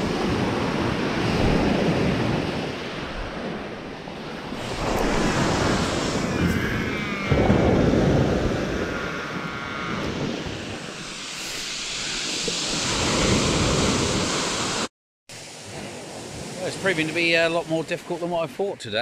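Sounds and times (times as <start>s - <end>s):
wind buffeting microphone: 0.0s - 17.4s
surf washing up shingle beach: 0.0s - 19.0s.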